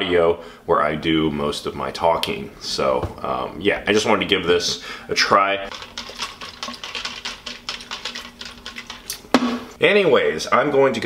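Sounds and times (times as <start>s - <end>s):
plastic shaker bottle rattling: 5.7s - 9.6s.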